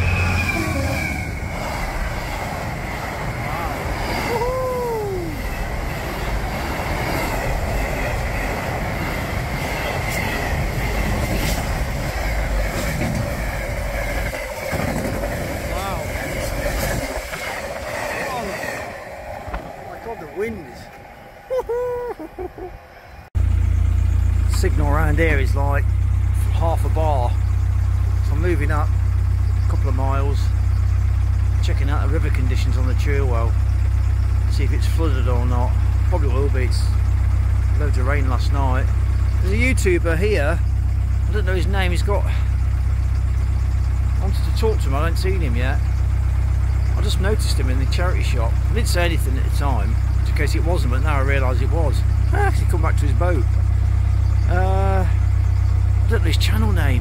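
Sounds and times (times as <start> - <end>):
boat engine hum: 0.0 - 57.0
freight train rumbling past: 0.0 - 57.0.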